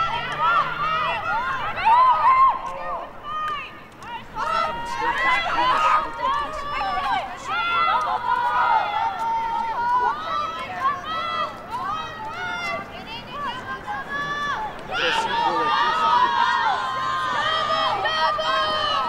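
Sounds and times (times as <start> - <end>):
women shouting and calling out: 0.0 - 19.0.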